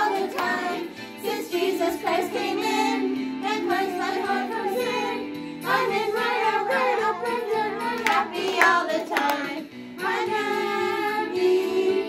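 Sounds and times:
children's song being sung: 0.0 - 12.0
sharp hand claps: 8.0 - 9.5.

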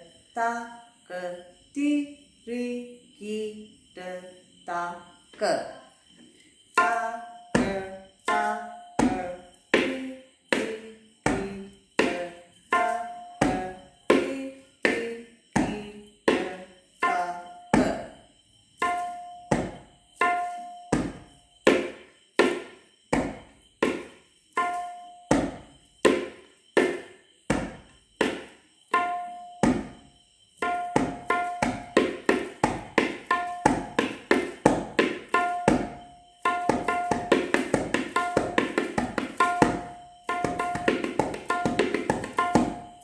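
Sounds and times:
tabla strokes: 6.8 - 15.0, 15.6 - 18.2, 18.8 - 43.0.

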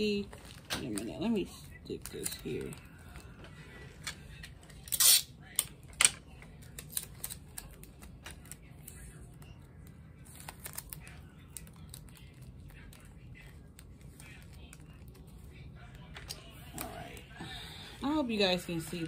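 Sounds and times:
candy packets crinkling: 0.0 - 5.6, 6.3 - 17.2.

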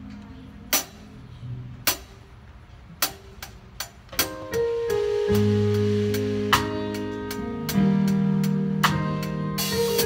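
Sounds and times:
live band playing: 3.0 - 10.0.

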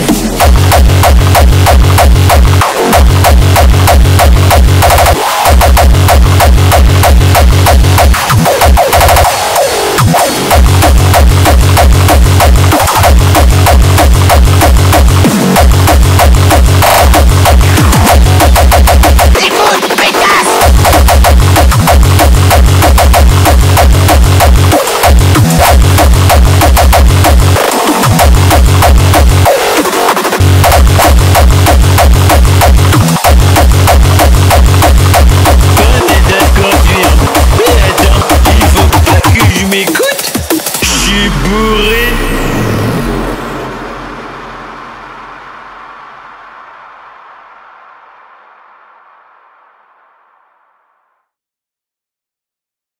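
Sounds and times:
fast kick drum: 0.0 - 9.4, 10.0 - 19.4, 20.6 - 29.5, 30.4 - 41.0
hard tekno track ending: 0.0 - 50.4
heavy bass: 0.0 - 50.6
falling synth sweeps: 40.8 - 50.2.

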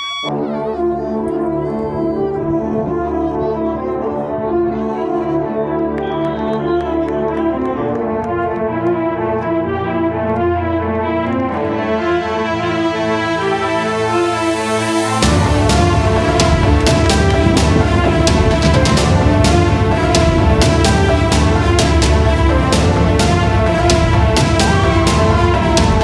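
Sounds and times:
brass music: 0.0 - 26.0.

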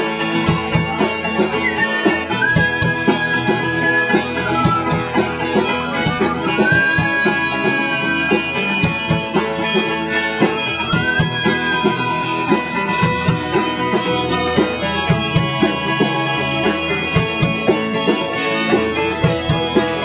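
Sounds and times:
strummed acoustic guitars: 0.0 - 20.0.

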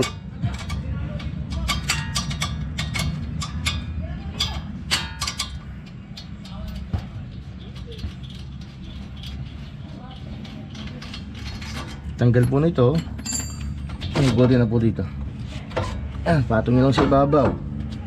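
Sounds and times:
metallic clicks and clinks: 0.0 - 14.4
steady low rumble: 0.0 - 18.0.

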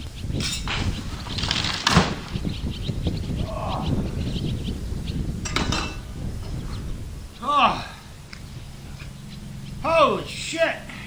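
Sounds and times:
faint low hum: 0.0 - 11.0
man's drawn-out exclamation: 7.4 - 8.0.

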